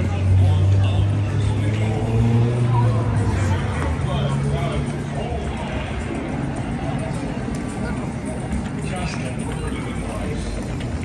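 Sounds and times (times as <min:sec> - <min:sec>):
faint voices of people: 0:00.0 - 0:11.0
vehicle engine rumble: 0:00.0 - 0:11.0.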